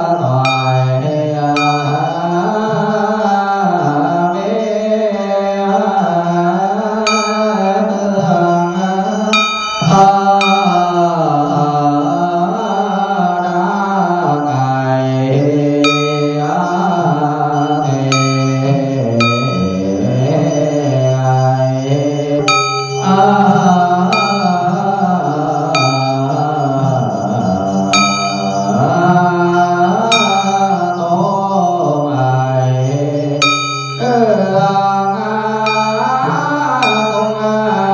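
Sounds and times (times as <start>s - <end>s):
person chanting a slow hymn: 0.0s - 37.9s
small bell ringing: 0.0s - 37.9s.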